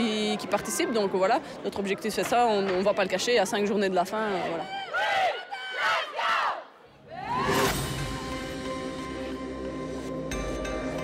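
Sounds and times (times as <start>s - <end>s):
women shouting rallying cry: 4.2s - 7.5s.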